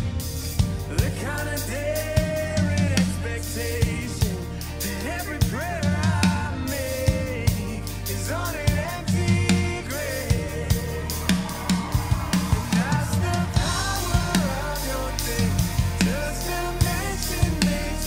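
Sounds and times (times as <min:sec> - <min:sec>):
drum kit playing a steady beat: 0:00.0 - 0:18.0
recorded worship rock song: 0:00.0 - 0:18.0.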